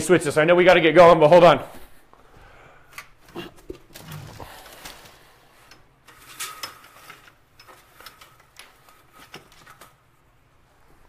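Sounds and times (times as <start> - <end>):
equipment handling clicks and rustles: 2.9 - 10.3.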